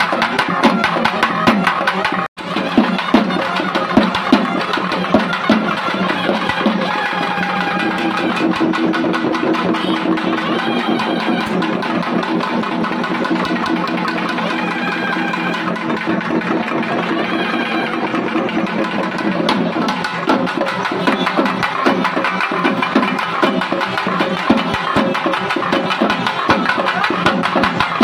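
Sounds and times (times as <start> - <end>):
barrel drums played with sticks: 0.0 - 28.0.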